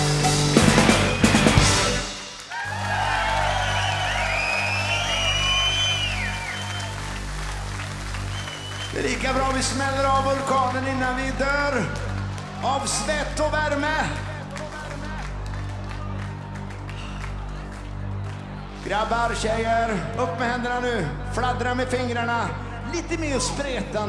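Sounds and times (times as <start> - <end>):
rock band playing: 0.0 - 3.4
audience cheering and whooping: 2.4 - 11.4.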